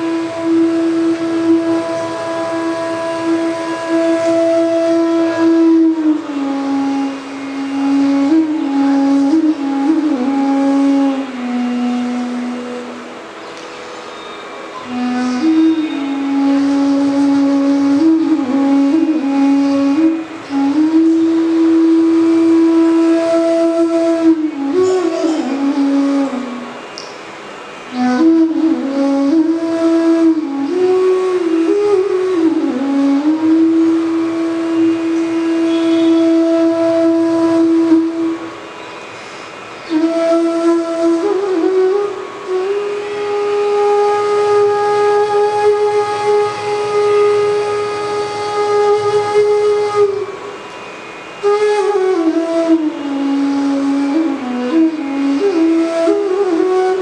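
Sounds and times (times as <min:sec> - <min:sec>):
bamboo flute playing: 0:00.0 - 0:57.0
faint steady drone: 0:00.0 - 0:57.0.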